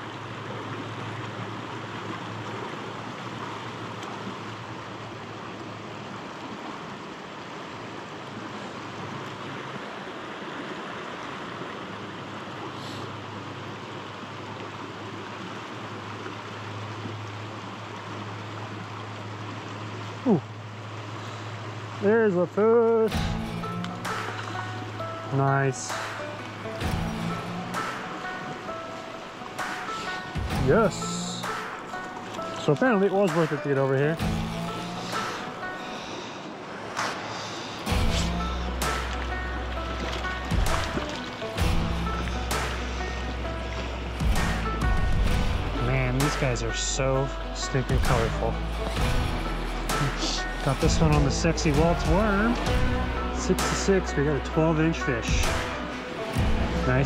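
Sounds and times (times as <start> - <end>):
river flowing over rocks: 0.0 - 57.0
music: 23.0 - 36.4, 37.0 - 57.0.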